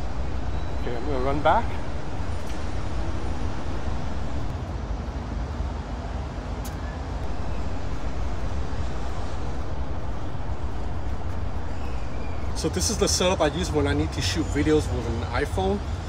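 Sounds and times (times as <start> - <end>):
city background rumble: 0.0 - 16.0.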